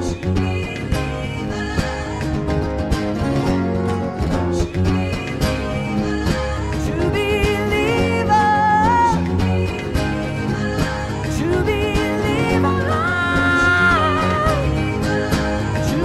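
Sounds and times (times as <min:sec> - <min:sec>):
live rock band music: 0:00.0 - 0:16.0.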